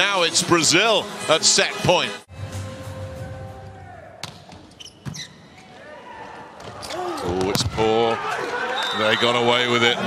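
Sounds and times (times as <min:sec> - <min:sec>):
arena crowd noise: 0:00.0 - 0:02.3, 0:02.9 - 0:04.8, 0:05.4 - 0:10.0.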